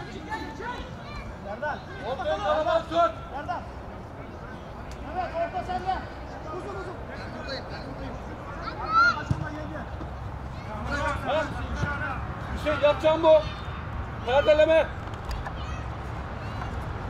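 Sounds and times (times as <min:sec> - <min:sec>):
low outdoor background noise: 0:00.0 - 0:17.0
voices shouting calls: 0:10.3 - 0:16.9.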